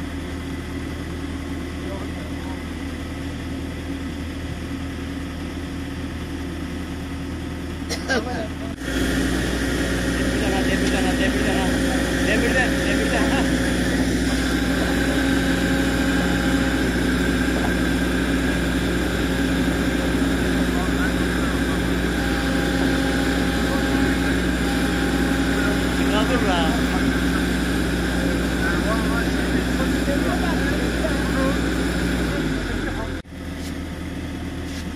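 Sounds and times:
engine humming: 0.0 - 34.9.

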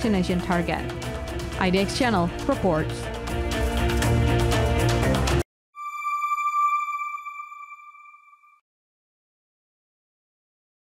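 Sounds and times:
electronic chime note: 5.8 - 8.6.

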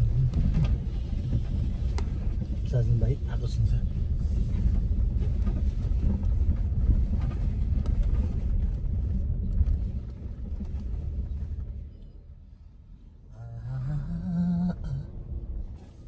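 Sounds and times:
vehicle engine and tyres rumbling: 0.0 - 16.0.

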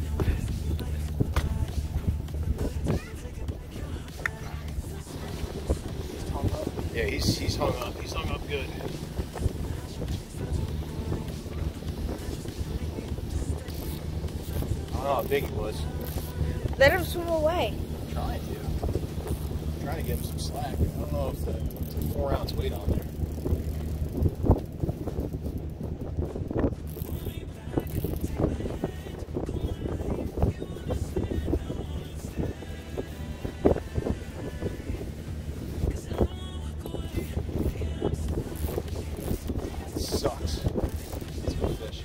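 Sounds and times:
steady low hum: 0.0 - 42.0
wind on microphone: 0.0 - 42.0
fishing reel clicking: 15.9 - 16.4, 26.9 - 28.3.

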